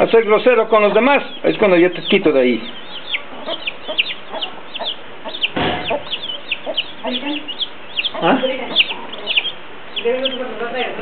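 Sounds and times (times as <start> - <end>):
chicks peeping: 0.0 - 11.0
hen clucking: 0.0 - 11.0.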